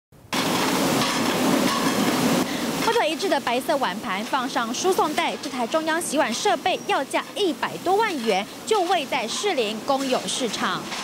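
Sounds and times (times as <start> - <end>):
plates rattling in racks: 0.4 - 11.0.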